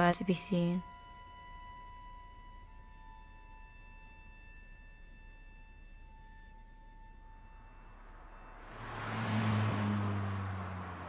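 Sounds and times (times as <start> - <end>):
car passing by: 7.4 - 11.0.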